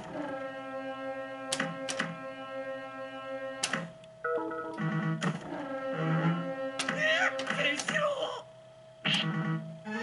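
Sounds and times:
electronic chord tones: 4.2 - 6.8.

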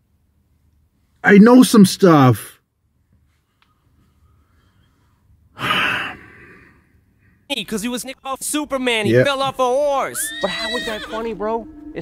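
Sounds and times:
man sighing: 5.6 - 6.7.

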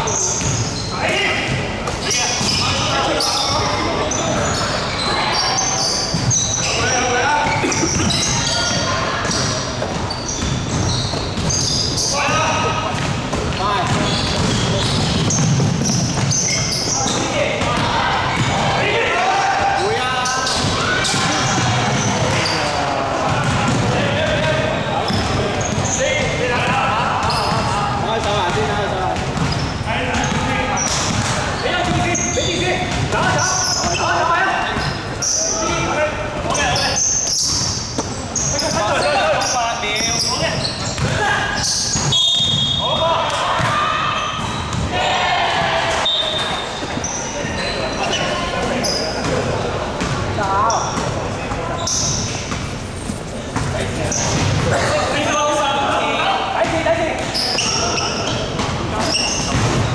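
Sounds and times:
people's voices echoing: 0.0 - 59.9
basketball bouncing on wooden court: 0.1 - 0.7, 7.4 - 11.8, 12.5 - 16.6, 17.6 - 18.6, 23.3 - 34.0, 40.6 - 43.8, 44.4 - 44.9, 56.6 - 59.9.

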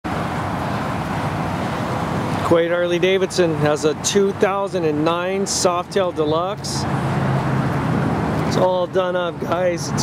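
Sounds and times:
motor vehicle rumble: 0.0 - 10.0.

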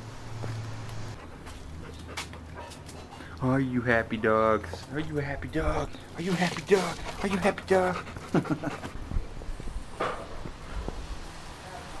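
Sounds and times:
dogs making quiet sounds: 1.1 - 3.5.

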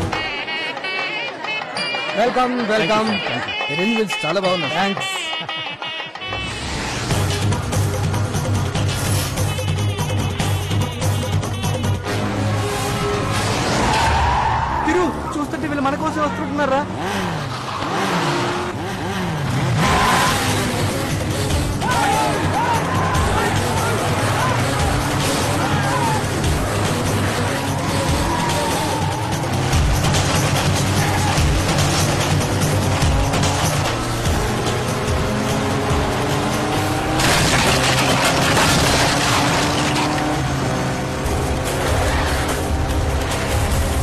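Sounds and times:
motorcycle and jeep engines: 0.0 - 44.0.

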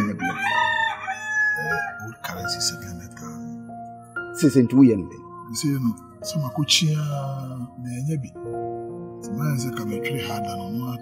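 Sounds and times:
rooster crowing: 0.0 - 2.2
background music with held notes: 0.0 - 11.0.

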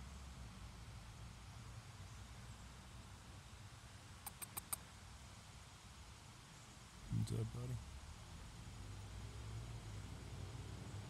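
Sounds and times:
faint background hiss: 0.0 - 11.0
chipmunk cracking seed shells: 4.2 - 4.8.

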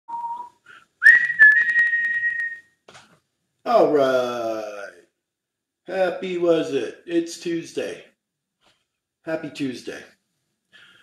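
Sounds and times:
person whistling: 0.1 - 2.7.

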